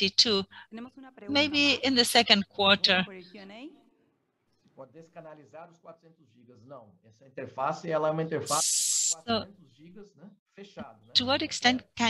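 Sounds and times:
person speaking: 0:00.0 - 0:00.5, 0:01.2 - 0:03.1, 0:07.4 - 0:09.5
burst of steady hiss: 0:08.4 - 0:09.2.

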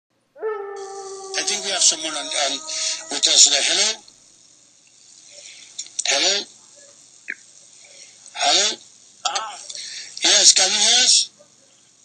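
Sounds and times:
telephone line hiss: 0:00.8 - 0:11.4.

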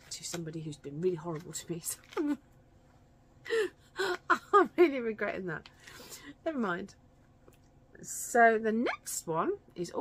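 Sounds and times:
woman laughing: 0:03.5 - 0:05.2.

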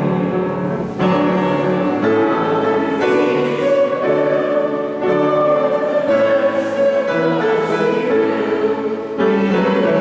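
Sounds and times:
hymn music with piano: 0:00.0 - 0:10.0.

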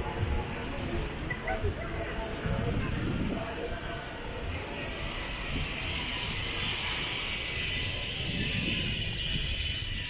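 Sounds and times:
hiss: 0:04.9 - 0:10.0.

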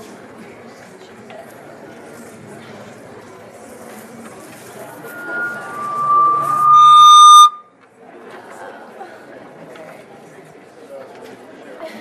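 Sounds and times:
murmur of crowd in hall: 0:00.0 - 0:12.0
feedback squeal: 0:04.8 - 0:07.7.

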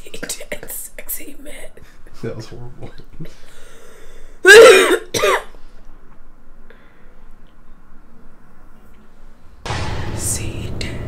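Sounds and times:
woman coughing: 0:04.4 - 0:05.5.

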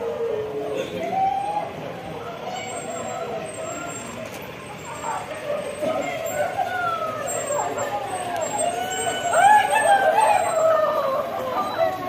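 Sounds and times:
people's wavering voices: 0:00.0 - 0:12.0.

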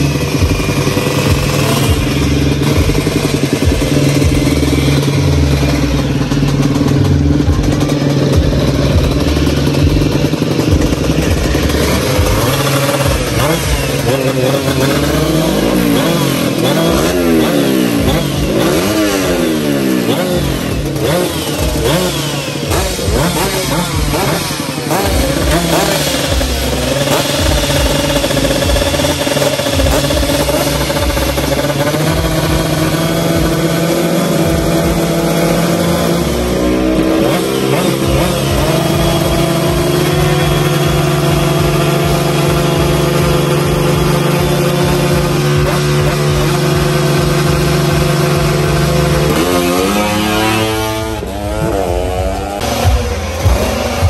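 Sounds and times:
motor scooter engine revving: 0:00.0 - 0:54.0.

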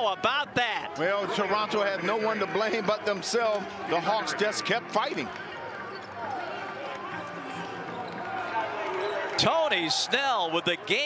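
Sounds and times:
broadcast commentary: 0:00.0 - 0:05.3, 0:09.3 - 0:11.0
players shouting and chattering: 0:00.0 - 0:11.0.

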